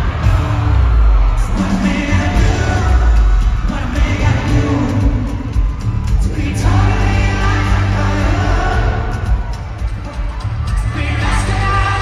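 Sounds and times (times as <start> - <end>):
live pop-rock band: 0.0 - 12.0
person singing: 1.4 - 12.0.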